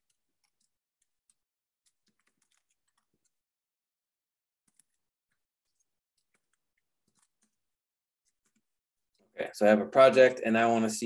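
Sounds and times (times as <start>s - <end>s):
faint typing on keyboard: 0.0s - 3.4s, 4.7s - 9.4s.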